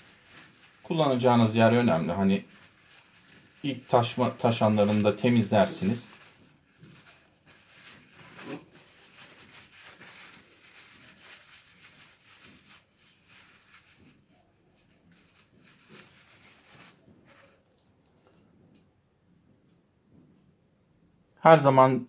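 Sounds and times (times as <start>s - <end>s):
paper towel rustling and crinkling: 0.0s - 18.6s.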